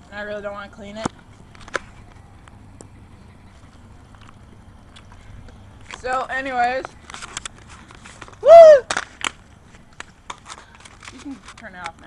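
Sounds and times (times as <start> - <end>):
boy yelling: 8.4 - 8.8.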